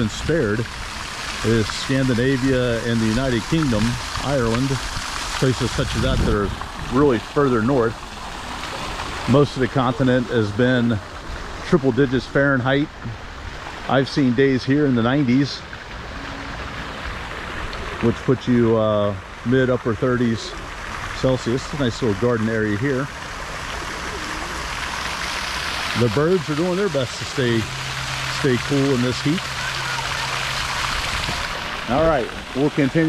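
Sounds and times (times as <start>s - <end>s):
fountain splashing into basin: 0.0s - 33.0s
water hissing: 0.0s - 33.0s.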